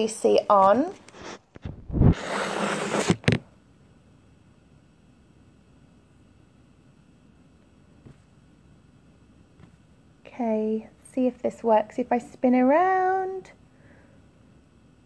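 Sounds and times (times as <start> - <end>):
fingers rubbing phone microphone: 1.0 - 3.4.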